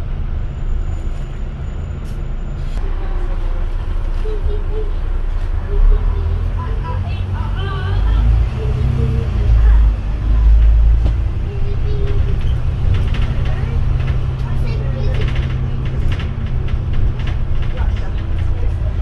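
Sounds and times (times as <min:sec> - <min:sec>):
bus engine rumble: 0:00.0 - 0:19.0.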